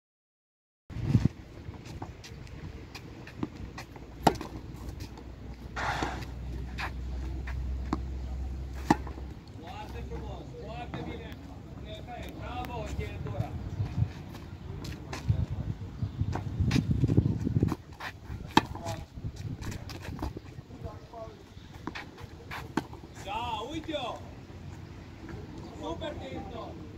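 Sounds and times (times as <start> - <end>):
tennis balls bouncing on clay: 1.7 - 11.5, 18.4 - 21.0
distant voices: 1.8 - 16.7
tennis balls struck by rackets: 2.9 - 10.3, 18.4 - 20.3, 21.8 - 23.2.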